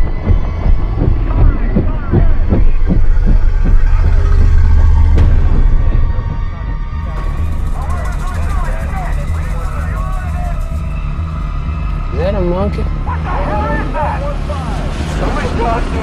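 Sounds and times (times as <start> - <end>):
helicopter rotors thumping: 0.0 - 12.1
deep heavy rumble: 0.0 - 16.0.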